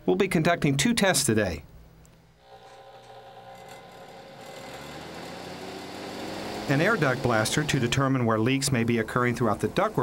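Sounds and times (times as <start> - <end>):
fan motor hum and air rush: 3.6 - 8.5.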